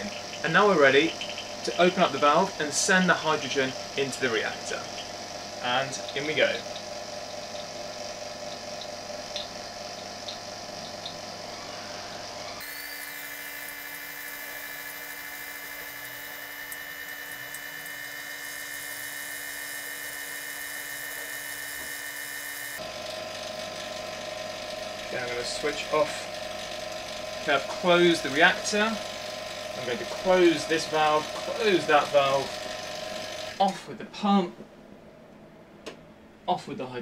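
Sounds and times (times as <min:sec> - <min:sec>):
vacuum pump running: 0:00.0 - 0:33.8.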